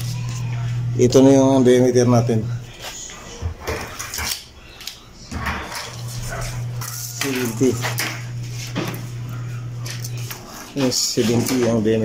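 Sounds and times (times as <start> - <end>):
steady low hum: 0.0 - 3.8, 5.0 - 11.9.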